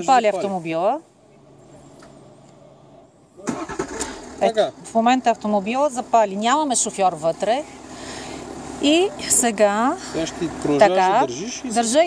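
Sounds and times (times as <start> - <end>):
car engine starting and running: 0.0 - 12.0.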